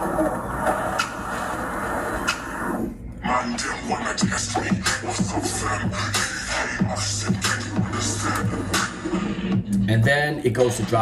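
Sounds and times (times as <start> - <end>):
electronic dance music intro: 0.0 - 3.0, 3.6 - 9.6.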